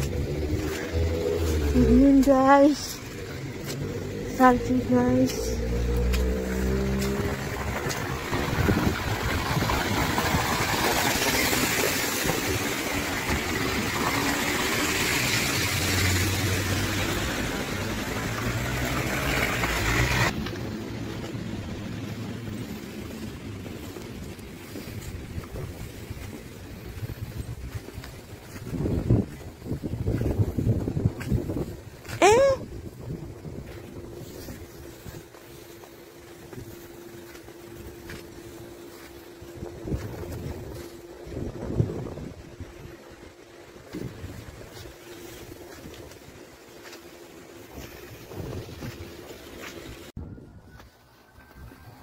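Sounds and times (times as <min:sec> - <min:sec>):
tyres hissing through wet snow: 0:00.0 - 0:41.7, 0:42.4 - 0:50.2
car engine hum: 0:00.0 - 0:50.2
street sound: 0:00.0 - 0:52.0.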